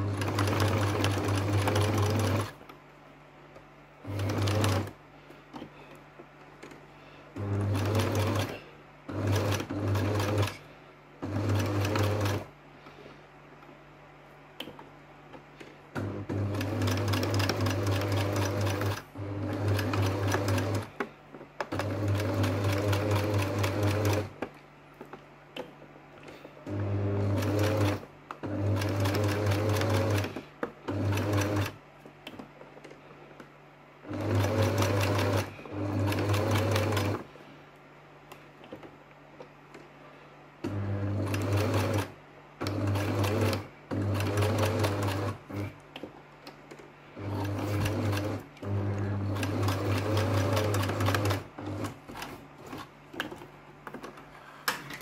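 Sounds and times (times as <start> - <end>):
electric sewing machine stitching: 0.0 - 2.6, 4.0 - 5.0, 7.4 - 10.6, 11.2 - 12.5, 16.0 - 20.9, 21.6 - 24.4, 26.7 - 31.8, 34.0 - 37.3, 40.6 - 45.8, 47.2 - 52.9.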